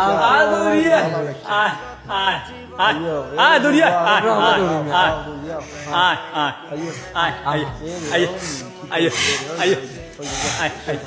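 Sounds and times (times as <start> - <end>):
person making melodic vocal sounds: 4.3 - 11.0
breathy noise: 6.7 - 11.0.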